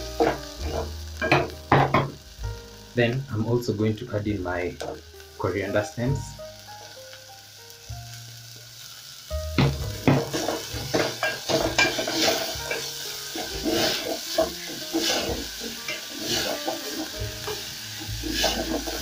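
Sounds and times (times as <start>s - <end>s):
oil sizzling: 0.0s - 19.0s
spatula scraping pot: 10.3s - 19.0s.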